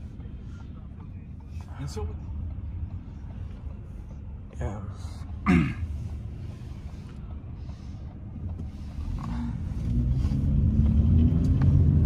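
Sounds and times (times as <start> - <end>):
road rumble inside car: 0.0 - 12.0
car engine accelerating: 8.3 - 12.0.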